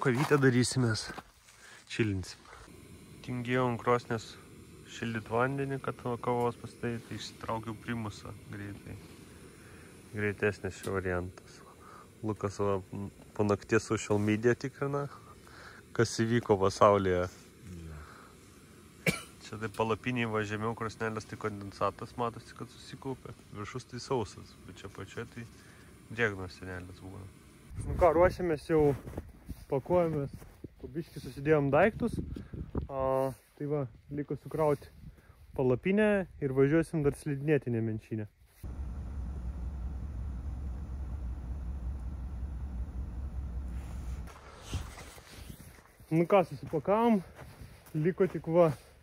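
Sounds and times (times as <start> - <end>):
steady low rumble with hiss: 2.6 - 28.8, 38.6 - 45.2
man coughing: 19.0 - 19.4.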